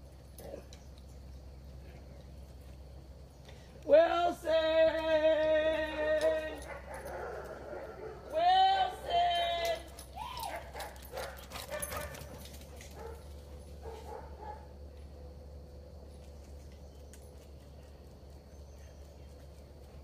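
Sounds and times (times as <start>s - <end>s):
dog yelping: 10.2s - 12.2s.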